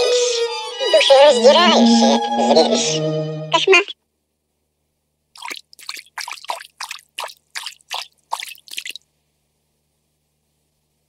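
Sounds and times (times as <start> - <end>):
cartoon water dripping: 5.4 - 9.0.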